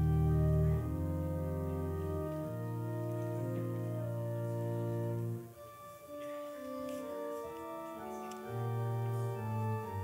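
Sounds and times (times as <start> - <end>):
organ playing held chords: 0.0 - 10.0.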